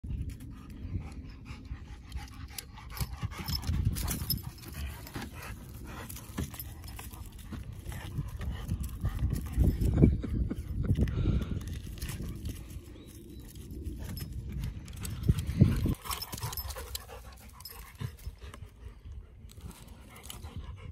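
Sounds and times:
dog panting: 0:15.1 - 0:20.9.

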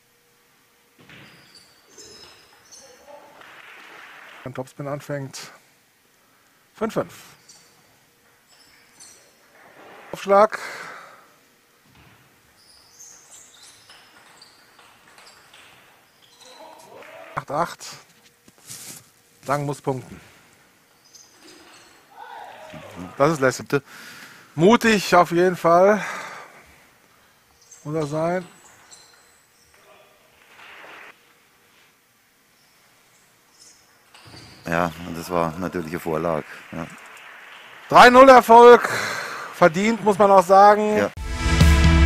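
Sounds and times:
shoes squeaking on floor: 0:01.0 - 0:03.3, 0:07.2 - 0:07.8, 0:08.4 - 0:10.2, 0:11.9 - 0:17.2, 0:21.0 - 0:23.1, 0:27.5 - 0:31.2, 0:33.5 - 0:35.9.

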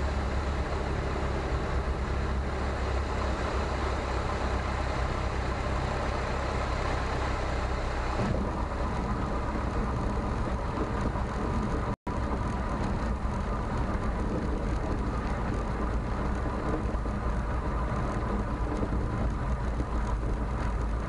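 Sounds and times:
aircraft engine running: 0:00.0 - 0:21.0.

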